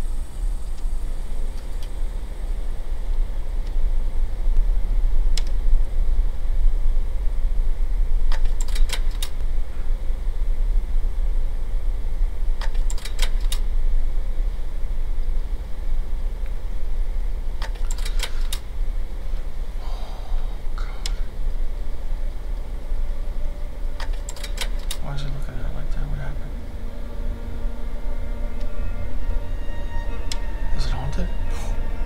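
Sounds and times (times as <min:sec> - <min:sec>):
steady low hum: 0:00.0 - 0:32.0
projector clicks and rattles: 0:24.0 - 0:25.1.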